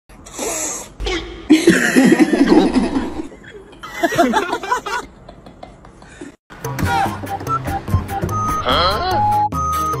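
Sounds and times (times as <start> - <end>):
person laughing: 1.5 - 6.2.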